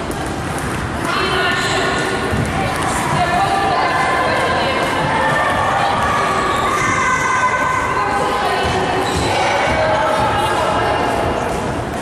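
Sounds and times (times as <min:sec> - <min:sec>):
jump ropes slapping: 0:00.0 - 0:06.5, 0:08.2 - 0:12.0.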